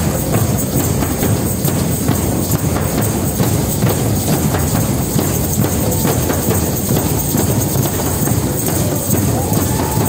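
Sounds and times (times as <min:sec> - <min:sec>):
hand drums playing: 0:00.0 - 0:10.0
tambourines jingling: 0:00.0 - 0:10.0.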